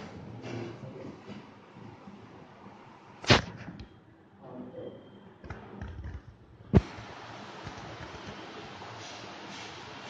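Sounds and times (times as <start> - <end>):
steady hiss: 6.8 - 10.0.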